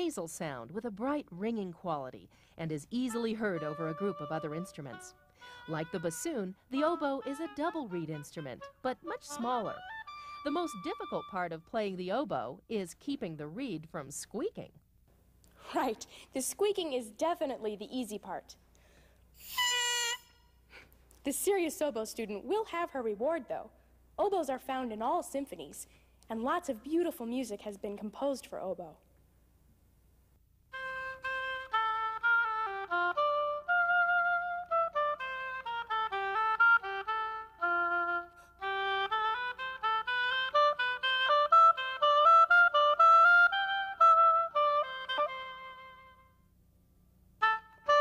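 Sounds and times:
solo oboe melody: 0:03.2 - 0:11.4, 0:19.4 - 0:20.6, 0:30.7 - 0:46.4, 0:47.4 - 0:48.0
oboe reed squeaking note: 0:19.4 - 0:20.6.

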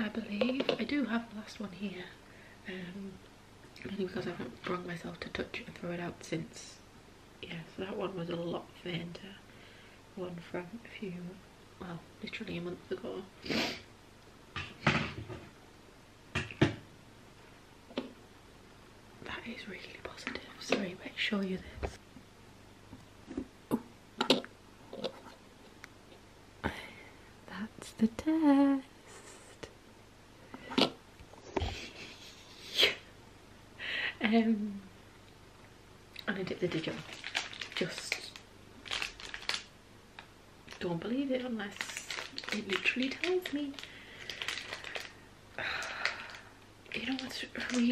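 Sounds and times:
plastic wrapper crinkling and tearing: 0:36.6 - 0:40.9, 0:41.6 - 0:45.2, 0:45.8 - 0:47.9.

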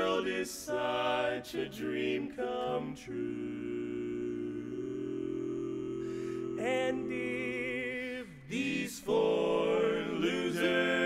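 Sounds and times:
men singing close harmony chord: 0:00.0 - 0:11.0.

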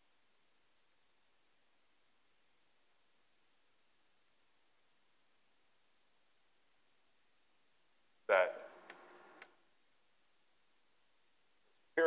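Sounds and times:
chalk squeaking on blackboard: 0:08.6 - 0:09.4
light chalk taps: 0:08.7 - 0:09.6.

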